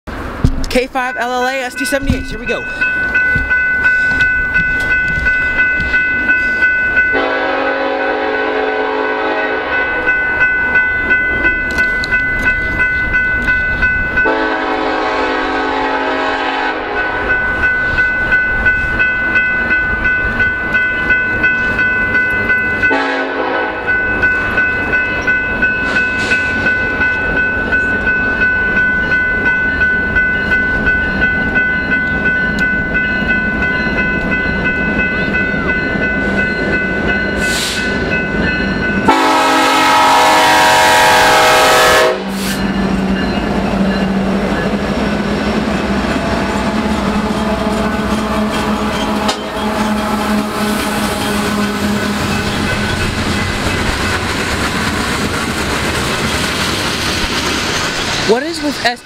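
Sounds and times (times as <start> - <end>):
train rumbling: 0.0 - 59.0
crossing bell dinging: 0.1 - 59.0
locomotive air horn blasts: 7.1 - 9.9, 14.2 - 17.3, 22.9 - 23.9, 39.0 - 42.6, 46.5 - 52.3.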